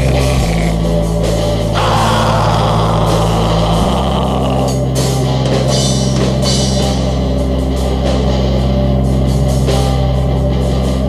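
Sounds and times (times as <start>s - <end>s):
black metal music: 0.0s - 11.0s.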